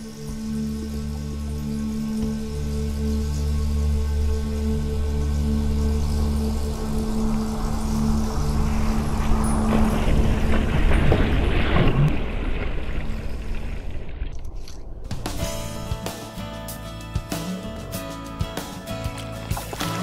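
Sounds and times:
low music drone: 0.0 - 12.6, 14.4 - 20.0
water splashing and rushing: 0.0 - 16.5, 18.4 - 20.0.

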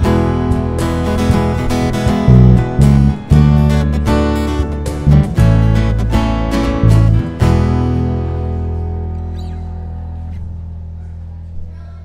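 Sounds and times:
strummed acoustic guitars: 0.0 - 10.9
deep electric bass line: 0.0 - 11.7
keyboard: 0.0 - 12.0.

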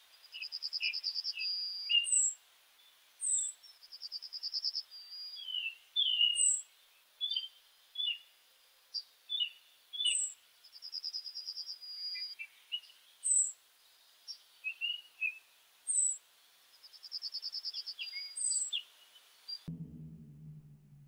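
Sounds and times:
bird trill: 0.3 - 2.4, 3.2 - 8.2, 9.3 - 13.5, 14.3 - 16.2, 16.9 - 19.7
sharp high bird chirps: 0.3 - 2.4, 3.2 - 8.2, 14.7 - 16.2, 16.9 - 19.7
short whistled bird notes: 0.4 - 2.3.

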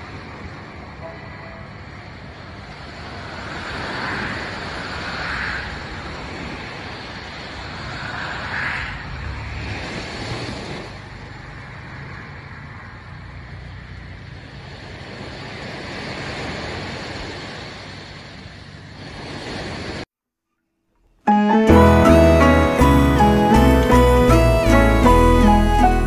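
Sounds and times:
small waves breaking on beach: 2.4 - 20.0.

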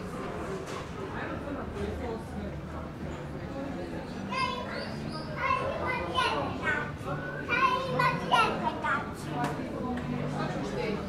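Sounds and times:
voices: 3.2 - 11.0
child chattering: 4.3 - 9.0.

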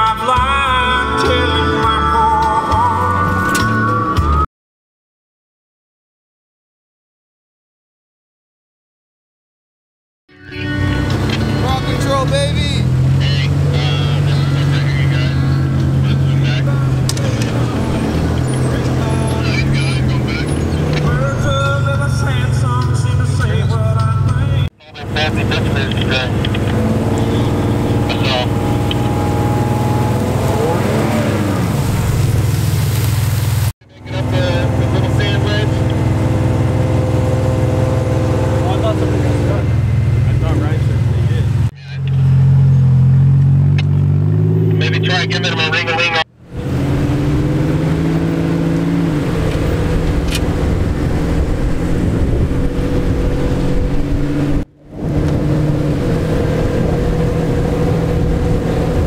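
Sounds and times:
engines revving: 10.6 - 59.0.

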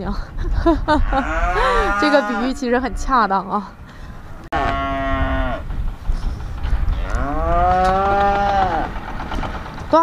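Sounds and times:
heifer mooing: 1.0 - 3.2, 4.2 - 5.6, 6.9 - 8.9.

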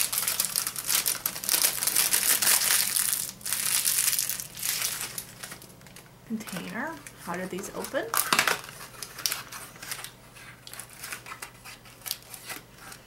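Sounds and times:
plastic packaging crinkling: 0.0 - 13.0.

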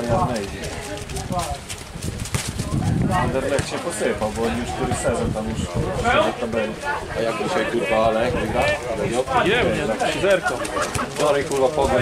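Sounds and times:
men talking: 0.0 - 1.7, 2.6 - 12.0.

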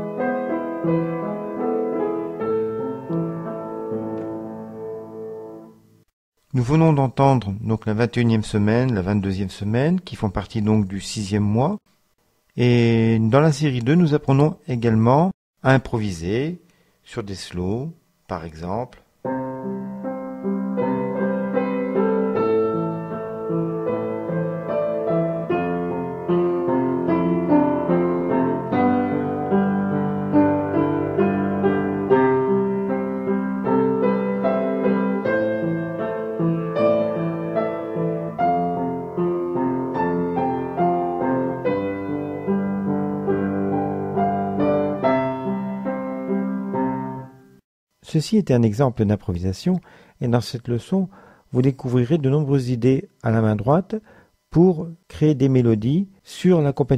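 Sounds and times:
piano ballad improvisation: 0.0 - 6.1, 19.3 - 47.6.

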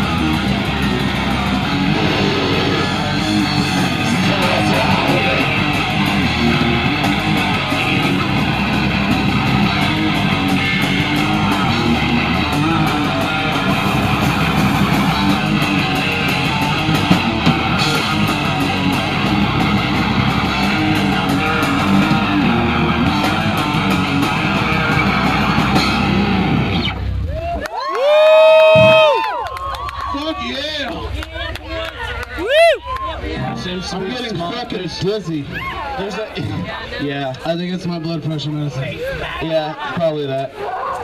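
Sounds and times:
rock band playing: 0.0 - 27.4
person whooping: 27.3 - 30.1, 32.4 - 33.0.

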